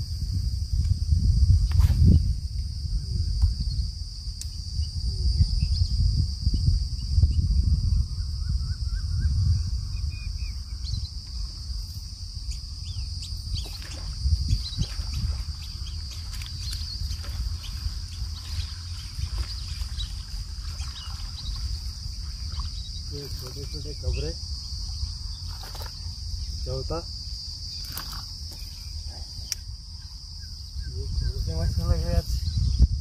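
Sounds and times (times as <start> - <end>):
high insect drone: 0.0 - 33.0
wind rumbling on microphone: 0.0 - 33.0.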